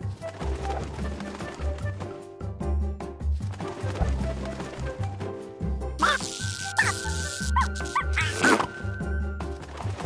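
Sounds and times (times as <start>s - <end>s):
electric buzz tone: 6.0s - 7.9s
game music loop with beat: 6.0s - 8.4s
cartoon bird squawks: 6.0s - 8.6s.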